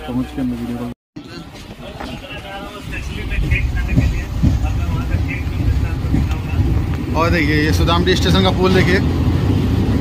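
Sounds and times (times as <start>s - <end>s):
train low rumble: 1.2s - 10.0s.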